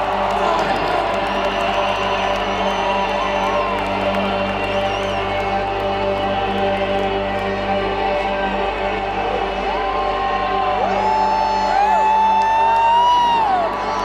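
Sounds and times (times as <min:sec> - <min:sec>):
crowd cheering: 0:00.0 - 0:14.0
loud droning chords: 0:00.0 - 0:14.0
shouted whoops: 0:09.7 - 0:14.0.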